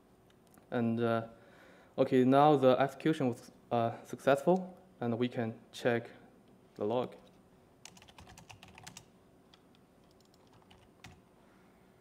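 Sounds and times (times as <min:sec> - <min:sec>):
laptop keyboard typing: 0:07.8 - 0:11.2.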